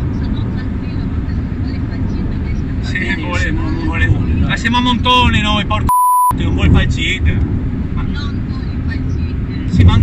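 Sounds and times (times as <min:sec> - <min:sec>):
engine and tyre rumble: 0:00.0 - 0:10.0.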